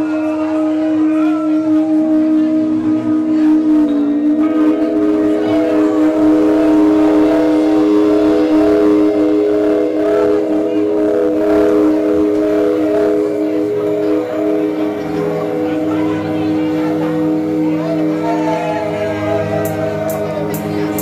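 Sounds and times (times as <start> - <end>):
electric guitars and keyboard droning: 0.0 - 21.0.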